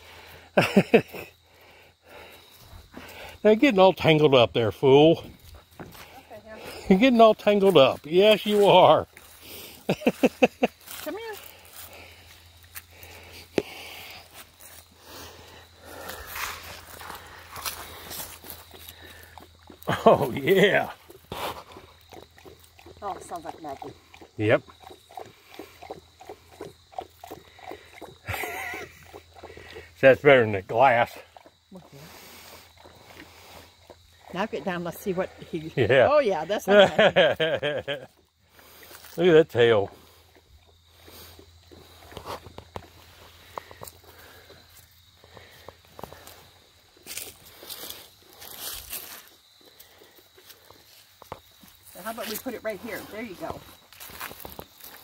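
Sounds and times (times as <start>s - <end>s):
rustling of dry leaves and grass: 7.9s - 22.1s, 40.0s - 55.0s
puppy lapping water: 16.8s - 35.6s, 39.6s - 44.6s.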